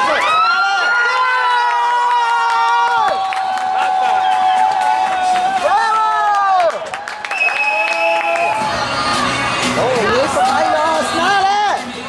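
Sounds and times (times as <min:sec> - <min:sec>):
children cheering and shouting: 0:00.0 - 0:06.7.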